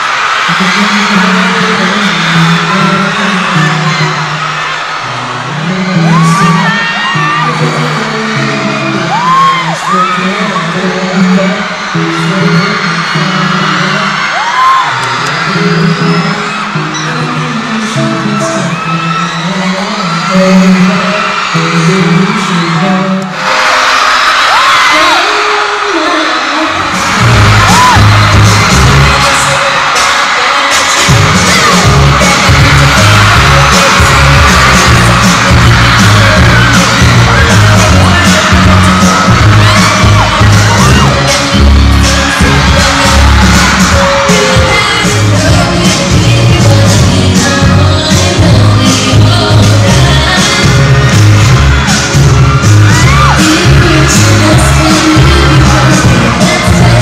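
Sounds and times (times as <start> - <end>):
man singing pop song live: 0.0 - 23.7, 24.6 - 57.0
crowd whooping and screaming: 0.0 - 57.0
track with heavy bass beat: 26.7 - 57.0.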